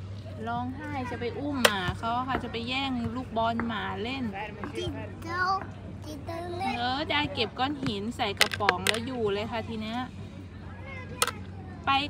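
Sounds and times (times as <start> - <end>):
woman speaking: 6.7 - 10.1.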